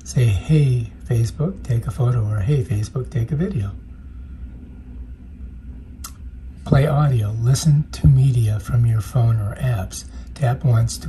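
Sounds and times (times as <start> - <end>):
low room rumble and hum: 0.0 - 11.0.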